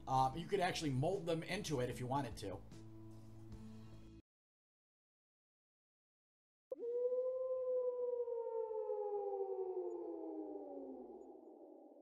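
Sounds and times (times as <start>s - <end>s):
descending siren-like wail: 6.7s - 12.0s.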